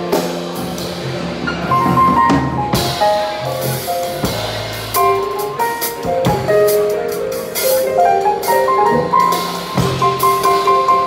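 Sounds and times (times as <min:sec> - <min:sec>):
digital piano: 0:00.0 - 0:11.0
drum kit: 0:00.0 - 0:11.0
electric bass: 0:00.0 - 0:11.0.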